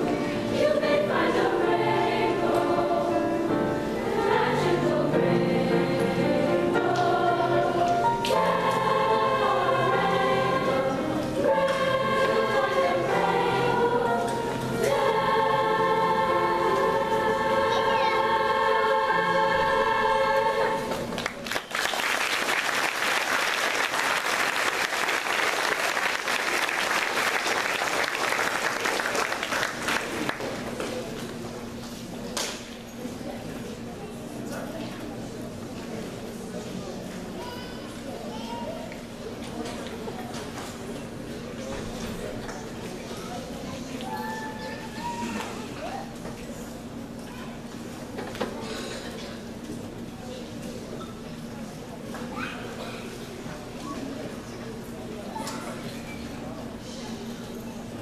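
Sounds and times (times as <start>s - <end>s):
piano accompaniment: 0.0s - 21.2s
girls' chorus singing: 0.0s - 21.5s
audience applauding: 21.2s - 30.6s.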